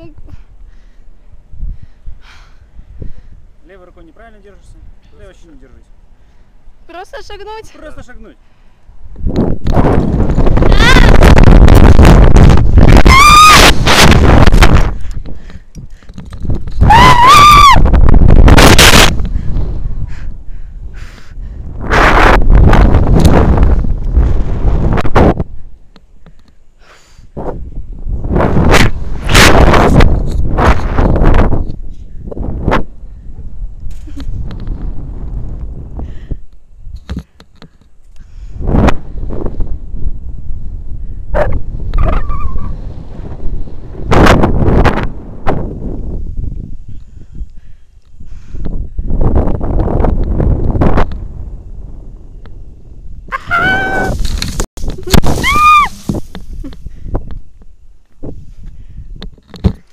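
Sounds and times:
wind rushing on microphone: 0.0 - 59.9
woman screaming: 10.6 - 11.4, 13.0 - 13.7, 16.8 - 17.9, 53.3 - 54.2, 55.2 - 56.1.

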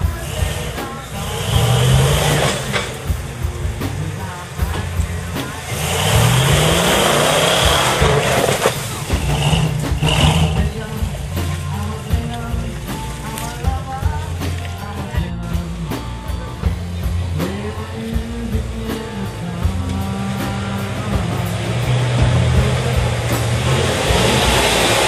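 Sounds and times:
truck engine revving: 0.0 - 25.0
tyres churning through mud: 0.0 - 25.0.

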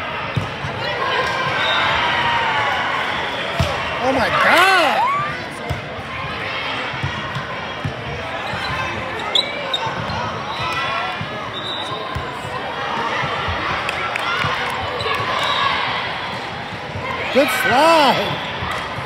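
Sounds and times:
many voices echoing: 17.1 - 18.5.

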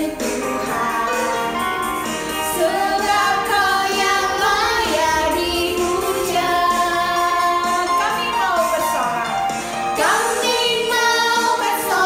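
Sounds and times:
backing music: 0.0 - 12.0
children and woman singing: 0.0 - 12.0.

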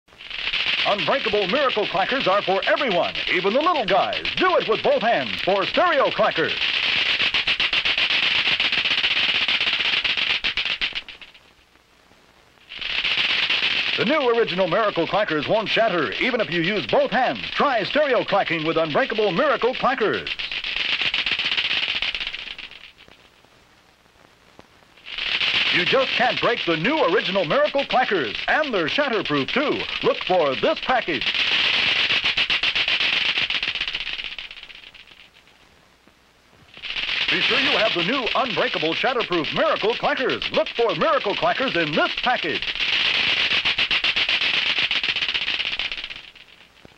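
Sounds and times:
plastic balls clacking: 0.2 - 11.4, 12.7 - 23.3, 25.0 - 35.6, 36.6 - 46.9.

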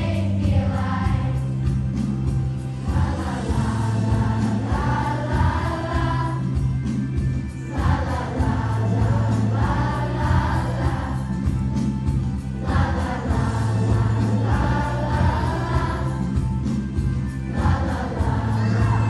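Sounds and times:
children's choir singing: 0.0 - 2.1, 2.8 - 6.7, 7.6 - 11.7, 12.4 - 19.0
bass-heavy musical accompaniment: 0.0 - 19.0.

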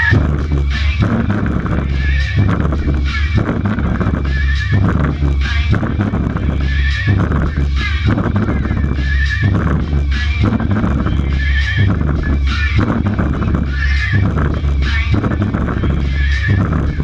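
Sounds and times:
high wavering whinny-like sound: 0.0 - 0.9
electronic dance music: 0.0 - 17.0
heavy bass line: 0.0 - 17.0.

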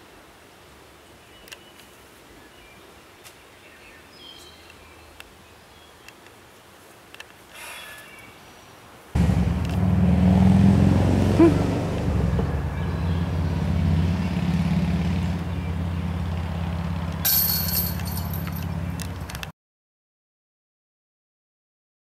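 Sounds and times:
engine running steadily: 9.2 - 19.5
bright rattle: 17.2 - 18.7.

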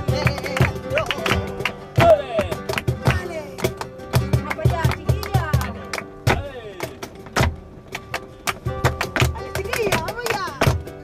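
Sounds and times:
sharp hand claps: 0.0 - 10.9
flamenco guitar: 0.0 - 11.0.

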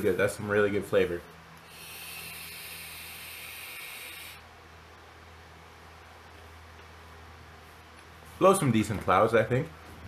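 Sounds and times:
vape airy hiss: 1.6 - 4.4.

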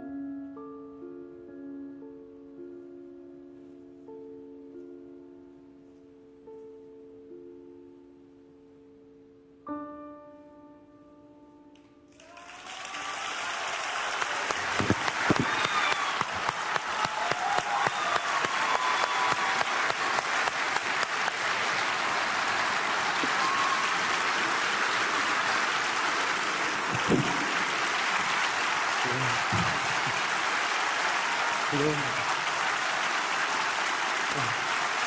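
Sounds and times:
audience applause: 12.1 - 35.0
shouts from audience: 12.2 - 25.7, 27.0 - 35.0.

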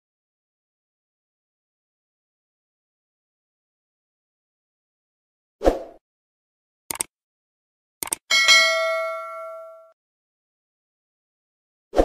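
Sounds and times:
mouse clicks: 6.9 - 7.1, 8.0 - 8.2
notification bell ding: 8.3 - 9.9.

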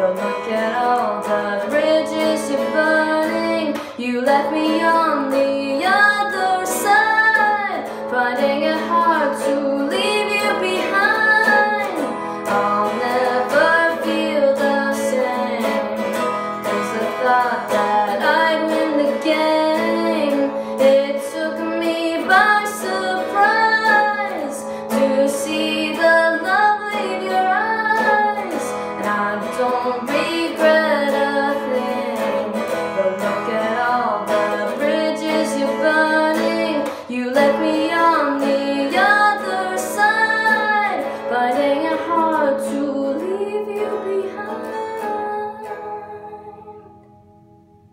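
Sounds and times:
woman singing: 0.0 - 47.3
guitar: 0.0 - 47.9.

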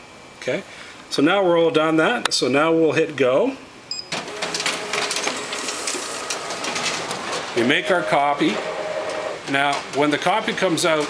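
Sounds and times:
faint hum: 0.0 - 10.0
copier whirring: 4.1 - 11.0.

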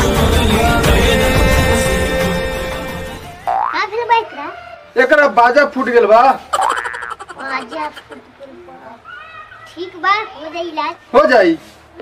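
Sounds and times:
background music: 0.0 - 3.6
cartoon boing glide: 3.4 - 3.8, 6.6 - 7.7.

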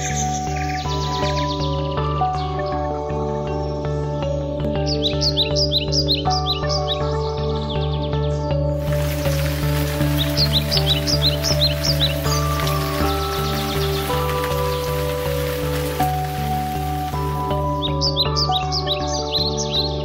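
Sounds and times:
slow calm background music: 0.0 - 20.0
bird chirps: 4.8 - 20.0.

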